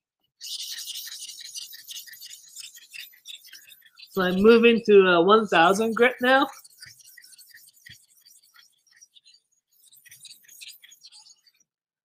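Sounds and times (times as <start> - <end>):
knife scraping on whetstone: 0.4 - 4.8, 5.5 - 11.6.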